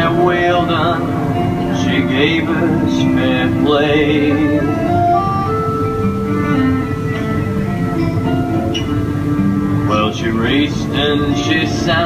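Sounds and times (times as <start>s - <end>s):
folk band instrumental: 0.0s - 12.0s
steady background hum: 0.0s - 12.0s.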